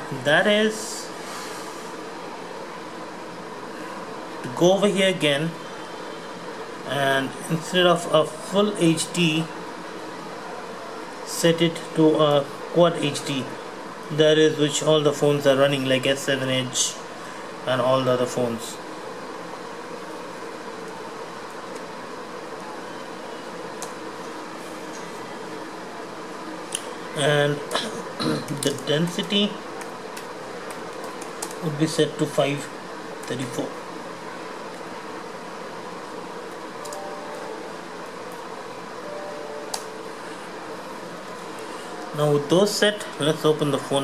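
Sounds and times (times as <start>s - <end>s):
steady background hiss: 0.0s - 44.0s
steady background hum: 0.0s - 44.0s
laptop keys clicking: 36.5s - 37.1s.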